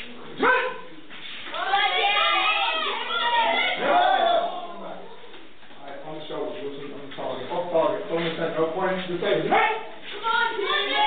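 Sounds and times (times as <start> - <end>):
person shouting sharply: 0.4 - 0.9.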